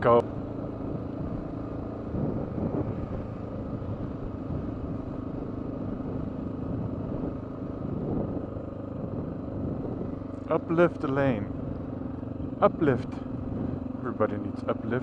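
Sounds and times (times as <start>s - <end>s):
motorcycle engine running: 0.0s - 15.0s
tires on gravel road: 0.0s - 15.0s.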